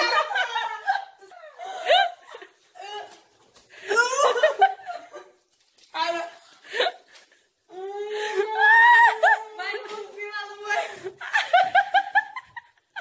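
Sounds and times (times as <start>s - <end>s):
teenagers laughing: 0.0s - 2.6s, 3.8s - 5.4s, 10.8s - 13.0s
people speaking: 7.8s - 11.1s.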